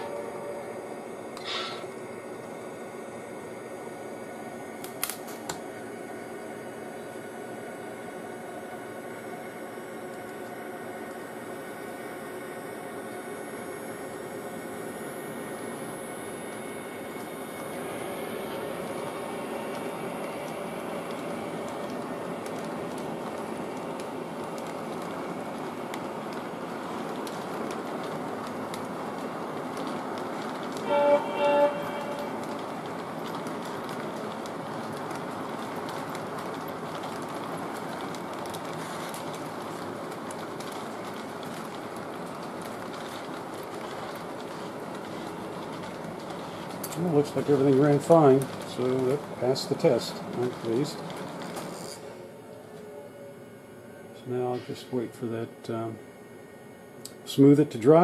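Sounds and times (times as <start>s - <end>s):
train horn blasts: 0.0s - 1.0s, 30.8s - 32.7s
model train wheels rumbling on rails: 13.8s - 52.0s.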